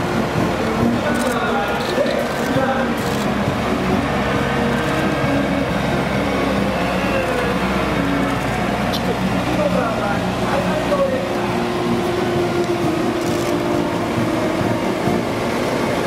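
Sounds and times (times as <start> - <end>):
heavy vehicle diesel engines: 0.0 - 16.0.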